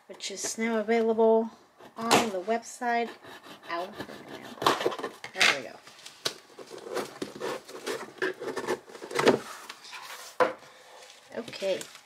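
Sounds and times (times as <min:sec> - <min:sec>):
cardboard and tape scraping: 0:01.9 - 0:10.4.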